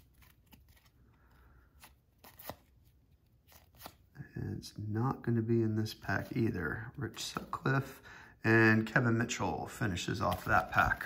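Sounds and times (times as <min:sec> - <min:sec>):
cards flicking and clicking: 0:10.1 - 0:11.0.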